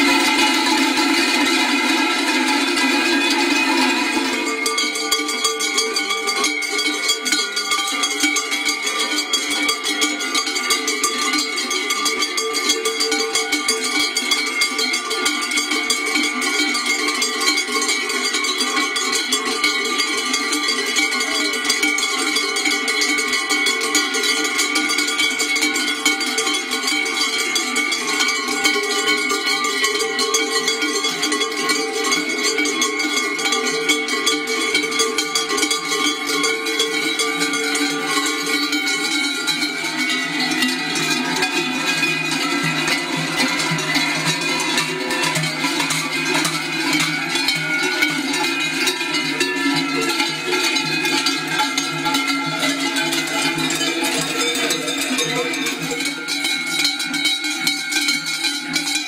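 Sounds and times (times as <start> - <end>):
cowbells clanging: 0.0 - 59.0.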